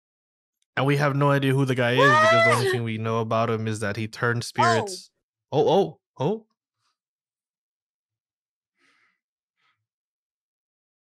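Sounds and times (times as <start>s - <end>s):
faint exhaled breath: 8.8s - 9.8s.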